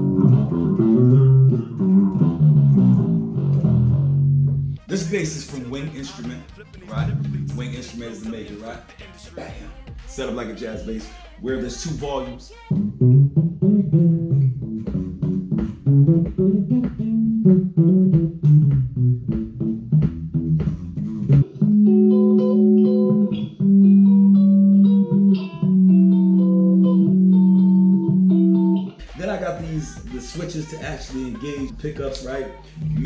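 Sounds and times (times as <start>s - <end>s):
electric bass playing: 0.0s - 33.0s.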